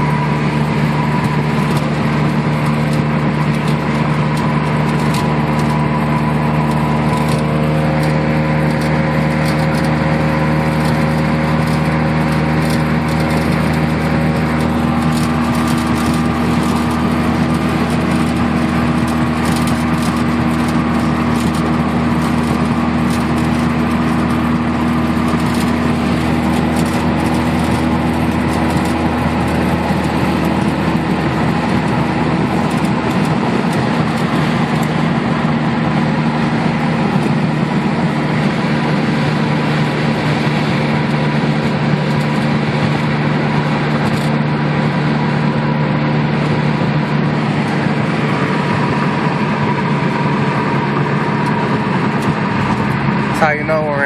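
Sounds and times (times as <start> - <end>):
rotary engine droning: 0.0 - 54.0
tyre and road noise: 0.0 - 54.0.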